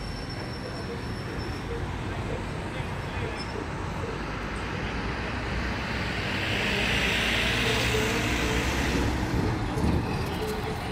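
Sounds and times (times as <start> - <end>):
road traffic noise: 0.0 - 10.9
vehicle passing: 0.9 - 10.9.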